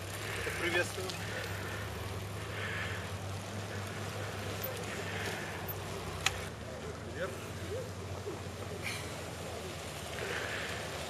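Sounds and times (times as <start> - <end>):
outdoor noise haze: 0.0 - 11.0.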